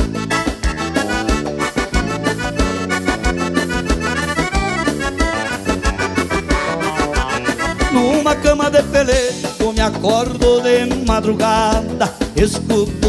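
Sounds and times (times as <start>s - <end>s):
accordion melody: 0.0s - 13.0s
live dance band playing: 0.0s - 13.0s.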